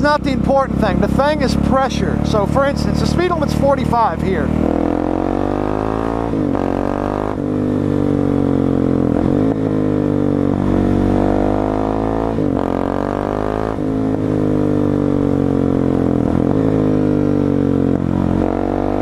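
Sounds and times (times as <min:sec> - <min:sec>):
motorcycle engine revving through gears: 0:00.0 - 0:19.0.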